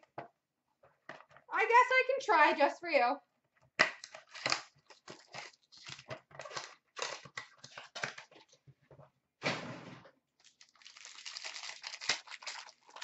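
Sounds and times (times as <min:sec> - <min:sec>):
foil wrapper crinkling: 0:04.0 - 0:08.5, 0:10.4 - 0:13.0.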